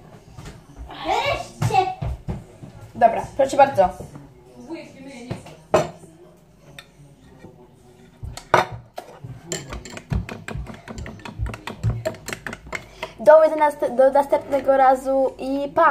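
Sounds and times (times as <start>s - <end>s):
dishes clinking on table: 8.2s - 13.2s.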